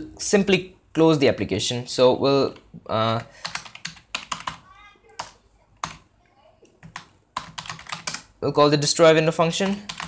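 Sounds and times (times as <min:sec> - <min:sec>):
computer keyboard typing: 0:02.5 - 0:06.1, 0:06.7 - 0:08.3, 0:09.5 - 0:10.0.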